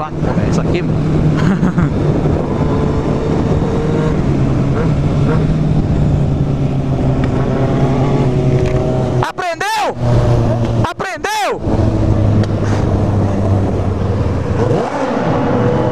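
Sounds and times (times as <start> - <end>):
wind noise on microphone: 0.0 - 9.2
motorcycle engine revving: 0.0 - 10.9, 11.6 - 15.9.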